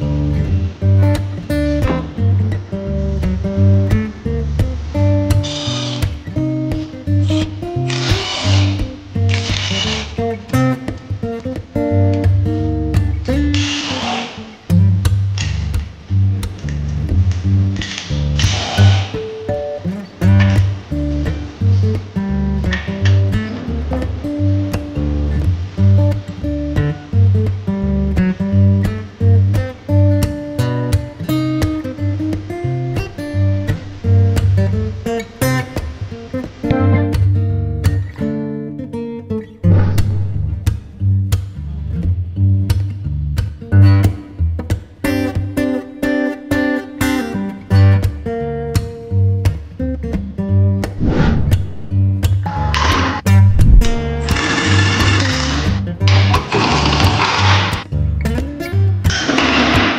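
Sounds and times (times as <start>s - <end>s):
background guitar music: 0.0s - 59.9s
short bursts of hiss: 5.4s - 6.2s, 7.3s - 10.2s
pulsing bass beat: 53.3s - 54.3s.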